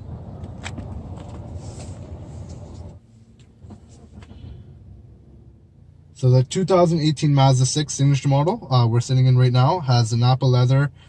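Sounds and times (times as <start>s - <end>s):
low vehicle rumble: 0.0s - 10.0s
car cabin low hum: 0.0s - 11.0s.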